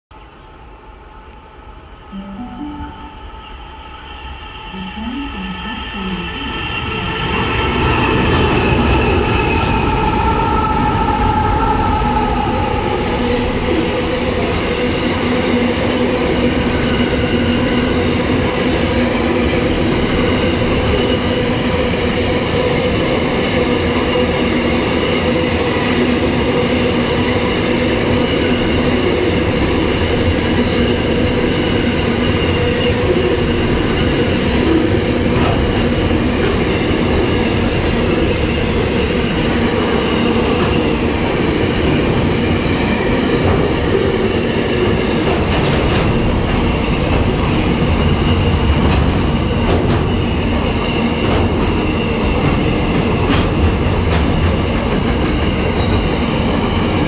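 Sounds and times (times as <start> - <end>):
freight train wheels rumbling: 3.3 - 57.0.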